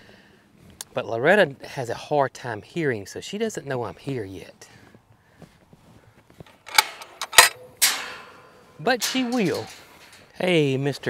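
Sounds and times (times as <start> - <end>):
metal latch clicks and clanks: 6.4 - 10.4
gate rattling clank: 6.5 - 10.7
metal gate ringing: 6.5 - 10.8.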